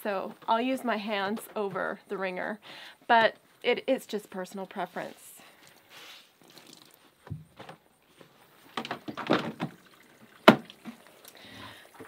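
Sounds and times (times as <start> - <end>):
wet clothes being wrung out: 5.7 - 7.1
water splashing into tub: 8.8 - 12.0.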